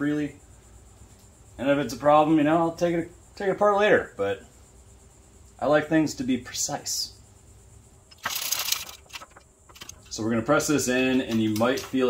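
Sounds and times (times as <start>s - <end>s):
metal parts rattling: 8.1s - 10.2s.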